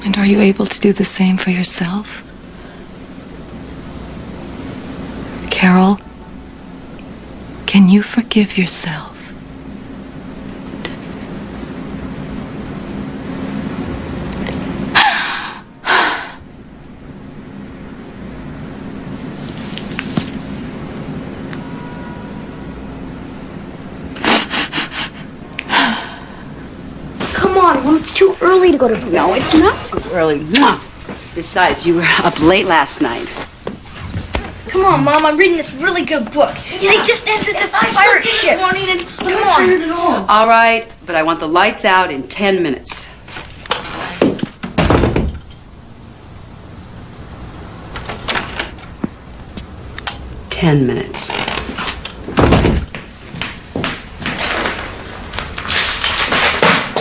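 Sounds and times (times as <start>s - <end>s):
low steady hum: 0.0s - 56.3s
woman sobbing: 14.9s - 16.4s
door closing thump: 44.2s - 45.4s, 52.3s - 53.0s.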